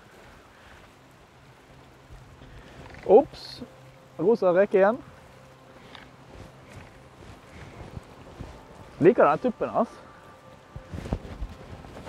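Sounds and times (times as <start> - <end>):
choppy water washing: 0.0 - 12.0.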